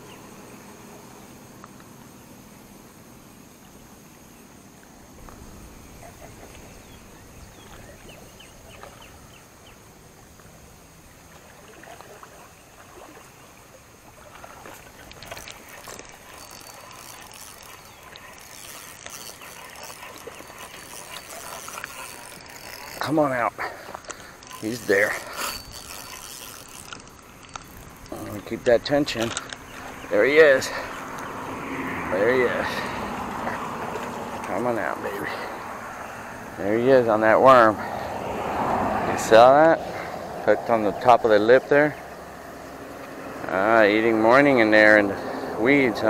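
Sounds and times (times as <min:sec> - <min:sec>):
insects droning: 0:00.0 - 0:46.0
handling clicks and rustles: 0:14.4 - 0:31.3.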